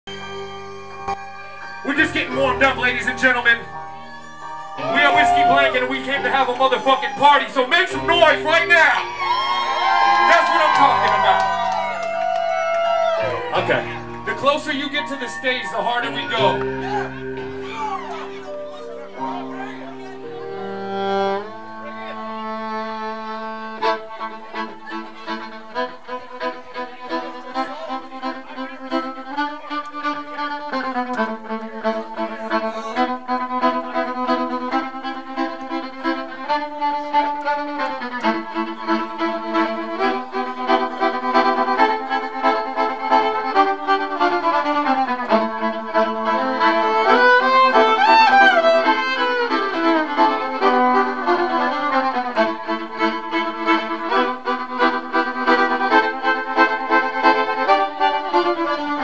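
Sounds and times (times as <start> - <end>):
fiddle playing bowed tune: 0.1 - 59.0.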